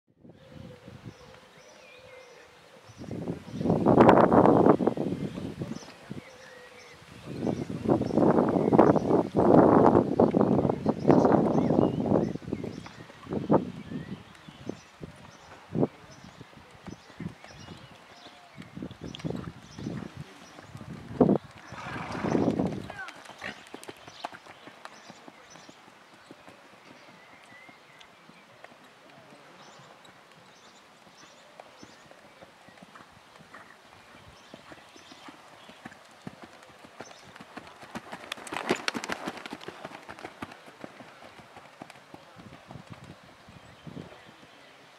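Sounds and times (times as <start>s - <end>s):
horse hoofbeats on sand: 16.8s - 43.5s.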